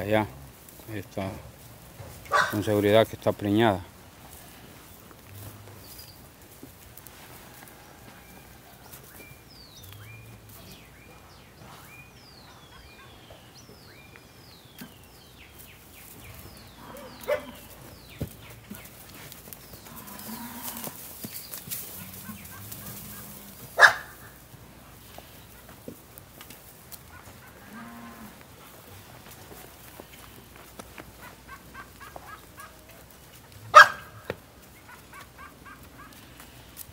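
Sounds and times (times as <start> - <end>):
cattle lowing: 16.1 - 25.9.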